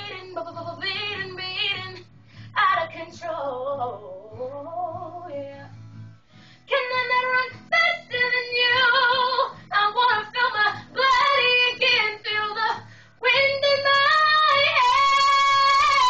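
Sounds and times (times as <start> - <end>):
woman singing wordless notes: 0.0 - 2.0, 2.6 - 5.7, 6.7 - 16.0
quick breaths: 12.8 - 13.2.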